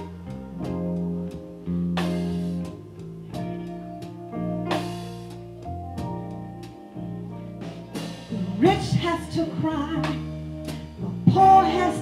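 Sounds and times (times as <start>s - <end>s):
bass notes: 0.0s - 12.0s
blues band playing: 0.0s - 12.0s
guitar: 0.0s - 12.0s
accented band hits: 1.9s - 2.8s.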